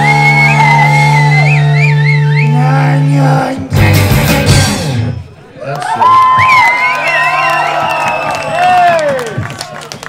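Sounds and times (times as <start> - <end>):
crowd cheering and whooping: 0.0 - 2.7, 5.5 - 10.0.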